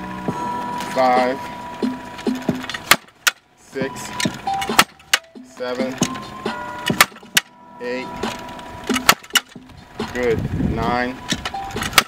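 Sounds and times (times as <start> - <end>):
machine whine: 0.0 - 12.0.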